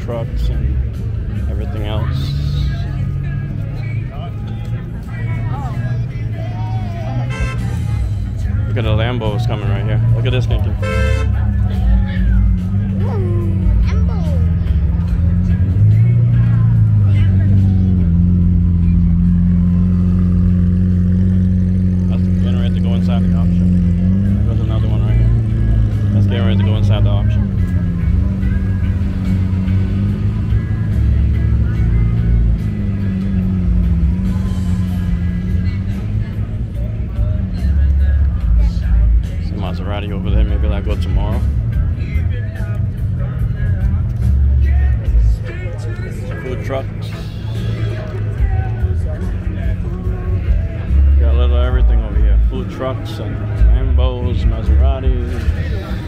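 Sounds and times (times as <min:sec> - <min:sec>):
car engine at low revs: 0:00.0 - 0:56.0
crowd chatter: 0:00.0 - 0:56.0.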